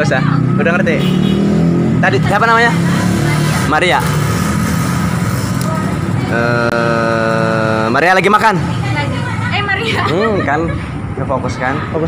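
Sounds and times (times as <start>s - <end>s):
motorcycles and cars passing: 0.0s - 12.0s.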